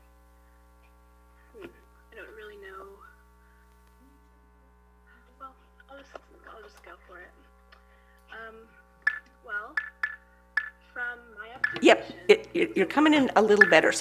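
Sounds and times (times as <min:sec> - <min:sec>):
steady hum of tones: 0:00.0 - 0:14.0.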